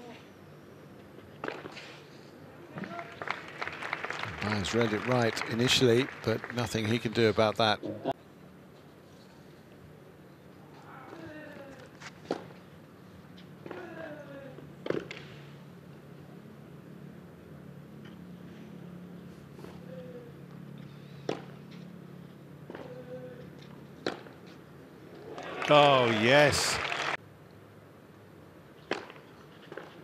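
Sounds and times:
players grunting: 0:25.6 - 0:26.9.

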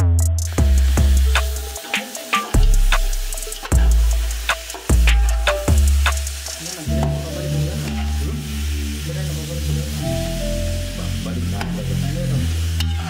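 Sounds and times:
background music: 0:00.0 - 0:13.0
chicken sizzling in pot: 0:00.5 - 0:13.0.

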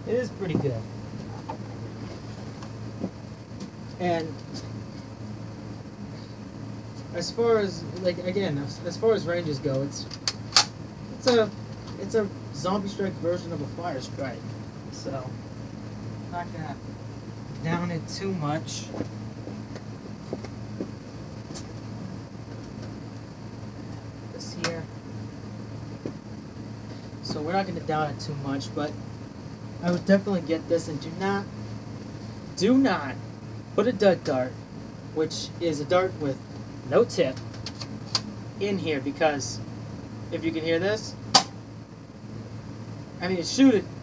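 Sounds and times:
steady low hum: 0:00.0 - 0:44.0.

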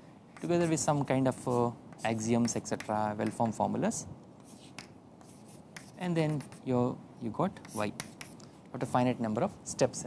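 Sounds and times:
chalk scratching on chalkboard: 0:00.3 - 0:03.8, 0:04.4 - 0:06.7, 0:07.6 - 0:08.5.

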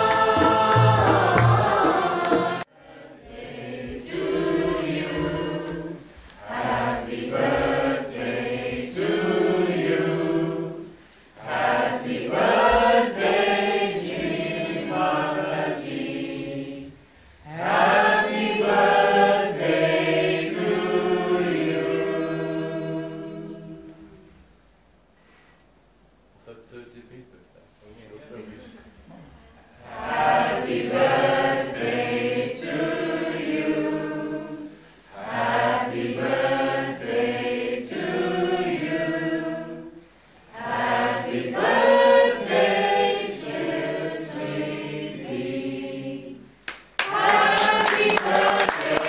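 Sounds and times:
group of people singing: 0:00.0 - 0:24.6, 0:29.1 - 0:49.0.

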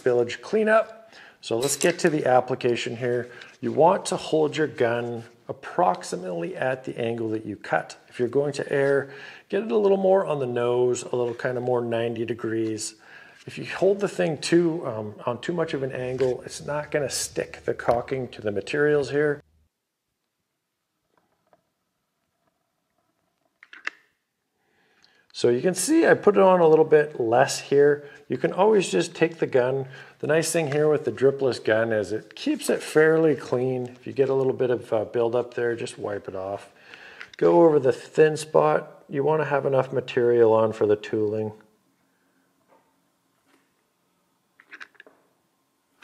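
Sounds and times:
faint handling noise: 0:01.5 - 0:04.2, 0:15.5 - 0:18.9.

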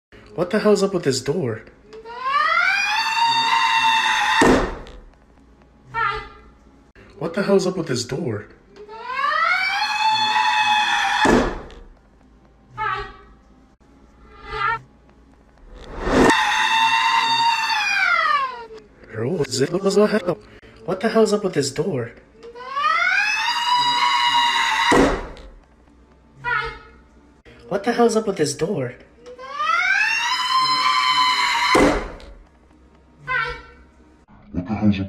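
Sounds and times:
high-pitched effect-altered voice cry: 0:22.6 - 0:24.3, 0:29.4 - 0:31.5.

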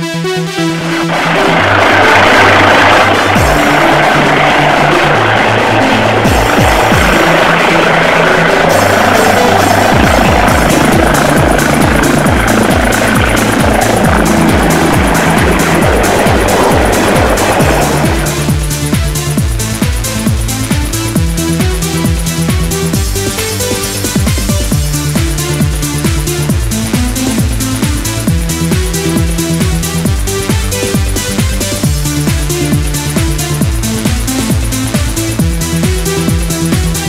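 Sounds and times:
electronic dance music: 0:00.0 - 0:37.0
helicopter turbine and rotor noise: 0:00.8 - 0:36.9.

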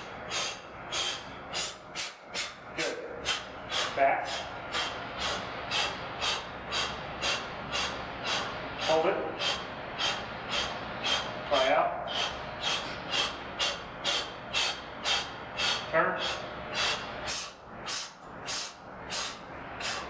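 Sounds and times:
man breathing forcefully: 0:00.0 - 0:20.0.

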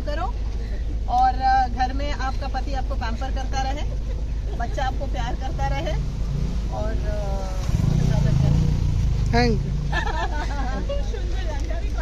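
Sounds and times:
street traffic hum: 0:00.0 - 0:12.0
motorcycle engine passing: 0:05.4 - 0:10.6.

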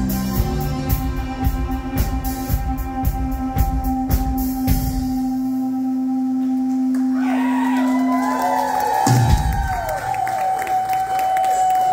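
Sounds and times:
audience cheering and whooping: 0:07.0 - 0:11.9.

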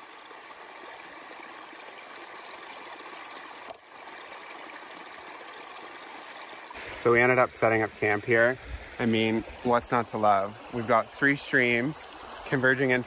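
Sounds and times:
stream trickling over rocks: 0:00.0 - 0:13.0.

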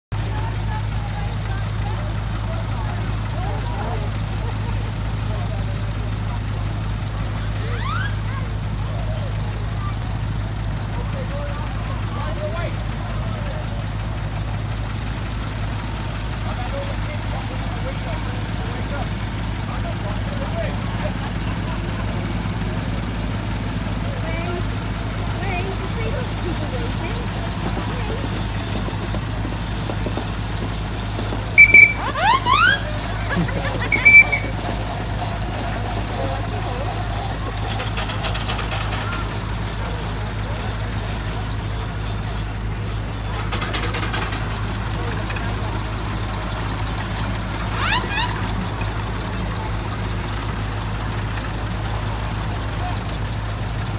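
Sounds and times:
engines humming: 0:00.0 - 0:53.9
people talking: 0:00.2 - 0:53.9
high-pitched whistle blast: 0:31.5 - 0:35.1.

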